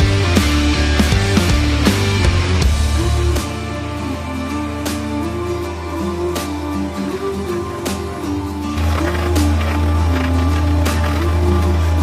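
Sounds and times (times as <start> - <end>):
background music with steady bass: 0.0 - 12.0.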